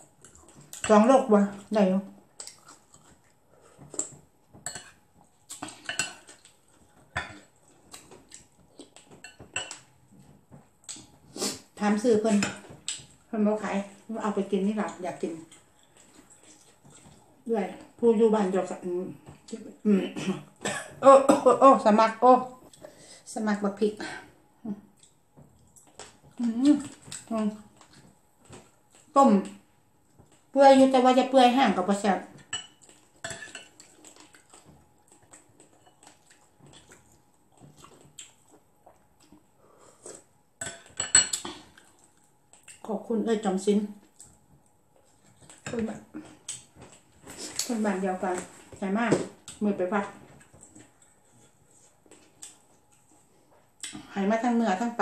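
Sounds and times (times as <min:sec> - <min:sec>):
woman speaking with mouth full: 0:11.4 - 0:12.6, 0:13.3 - 0:15.6, 0:17.4 - 0:22.6, 0:26.4 - 0:27.7, 0:42.8 - 0:44.0, 0:47.3 - 0:50.3, 0:53.9 - 0:55.0.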